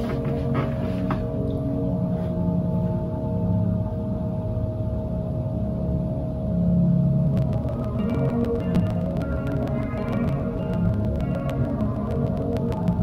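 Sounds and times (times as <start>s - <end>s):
low gong-like drone: 0.0s - 13.0s
steady held tone: 0.0s - 13.0s.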